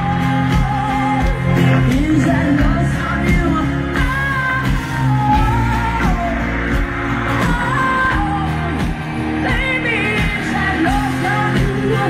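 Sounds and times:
live pop-rock band: 0:00.0 - 0:12.0.

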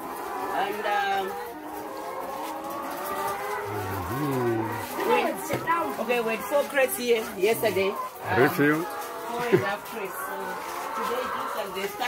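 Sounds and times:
hens calling in chorus: 0:00.1 - 0:12.0.

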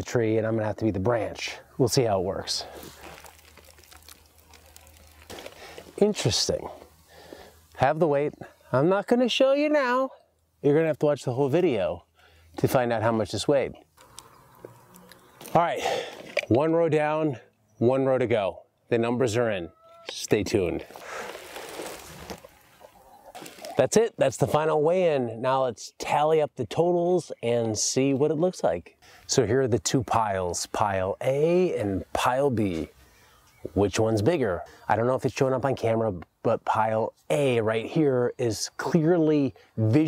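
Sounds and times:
plastic tarp rustling: 0:02.6 - 0:06.1, 0:20.8 - 0:22.8.

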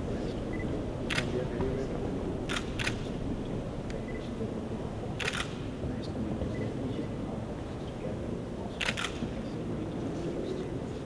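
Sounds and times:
crowd chatter: 0:00.0 - 0:11.0
camera shutters clicking: 0:01.1 - 0:01.4, 0:02.5 - 0:03.1, 0:05.2 - 0:05.6, 0:08.8 - 0:09.2.

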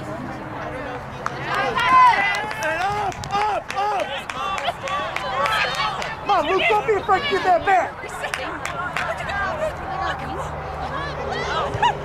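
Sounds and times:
voices shouting: 0:01.4 - 0:12.0.

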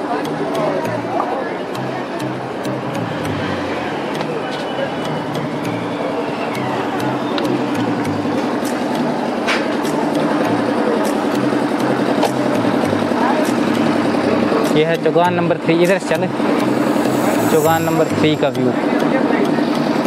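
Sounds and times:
music bass line: 0:00.0 - 0:20.0.

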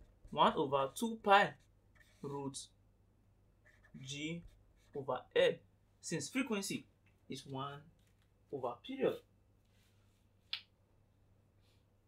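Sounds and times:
man speaking: 0:00.3 - 0:02.8, 0:03.9 - 0:07.9, 0:08.5 - 0:09.3.

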